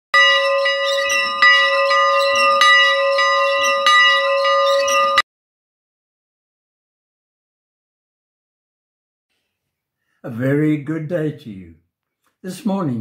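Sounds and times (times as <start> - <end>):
church bell ringing: 0.2 - 5.2.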